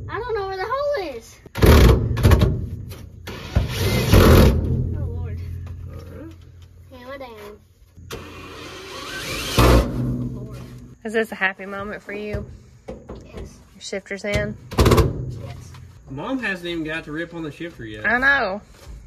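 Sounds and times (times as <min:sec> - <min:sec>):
cordless drill running: 0:08.1 - 0:09.8.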